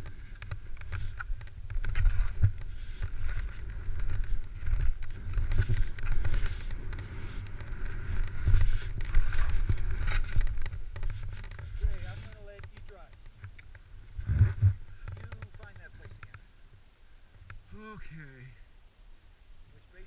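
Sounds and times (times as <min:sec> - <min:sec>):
wind buffeting microphone: 0:00.0 - 0:16.4
skis sliding through snow: 0:00.1 - 0:13.0.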